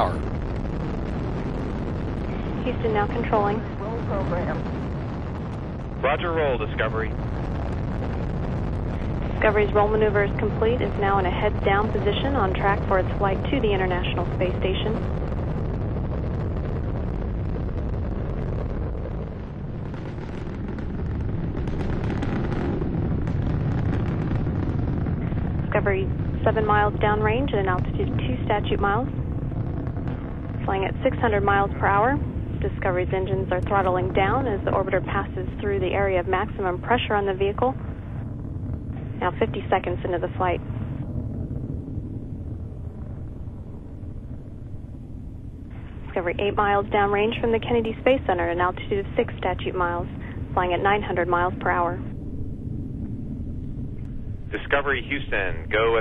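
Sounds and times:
rocket launch rumble with crackling: 0.0 - 56.0.

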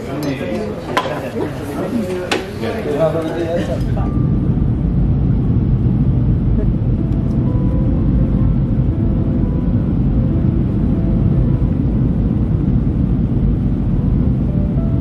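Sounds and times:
jet airliner cabin rumble: 0.7 - 15.0.

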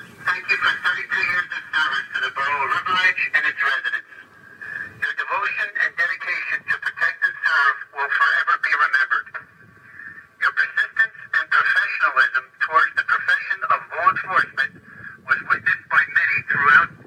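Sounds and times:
tinny voice over police radio: 0.0 - 9.5, 10.2 - 17.0.

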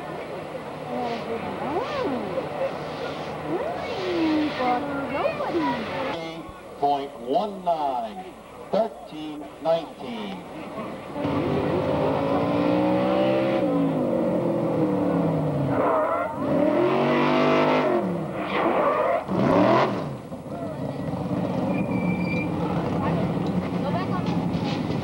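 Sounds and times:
racing engine revving: 11.2 - 20.3.

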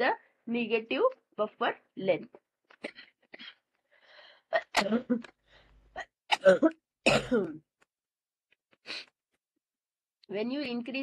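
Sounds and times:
person coughing: 4.6 - 5.2, 6.0 - 7.6.

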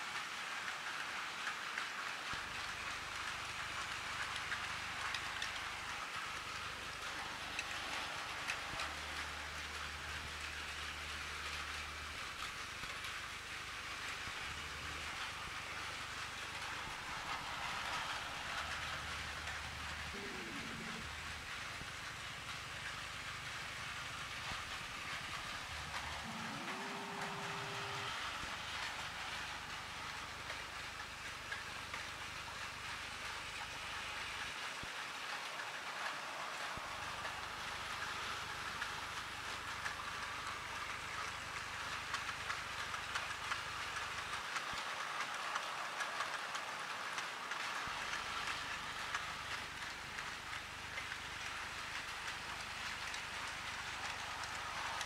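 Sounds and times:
toy train motors whirring: 0.0 - 55.0.

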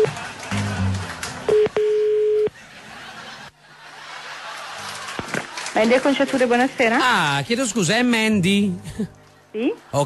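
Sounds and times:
telephone ringing tone: 1.5 - 2.5
background music: 6.1 - 10.0.

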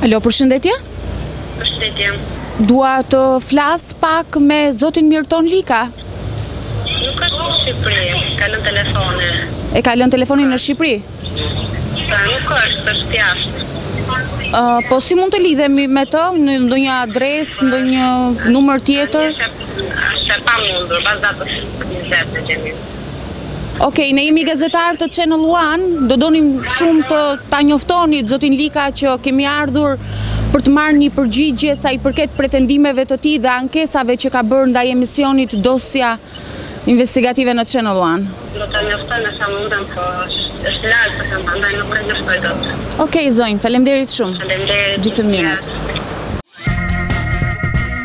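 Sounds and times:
low rumble of street traffic: 0.0 - 48.0
voice over a speakerphone: 1.6 - 2.2, 6.8 - 9.5, 11.2 - 16.3, 17.0 - 22.8, 23.8 - 28.0, 38.5 - 43.2, 44.2 - 46.1.

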